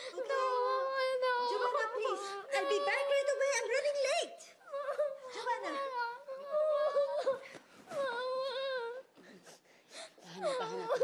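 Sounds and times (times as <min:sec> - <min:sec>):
girl crying: 0:00.0 - 0:03.9, 0:04.5 - 0:09.2, 0:10.3 - 0:11.0.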